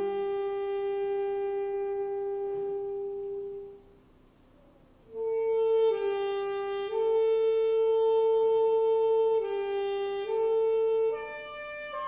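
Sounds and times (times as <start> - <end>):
concert band sustained note: 0.0 - 3.9.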